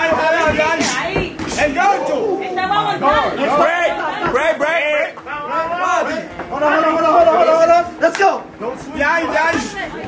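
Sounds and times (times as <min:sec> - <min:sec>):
people talking and shouting: 0:00.0 - 0:10.0.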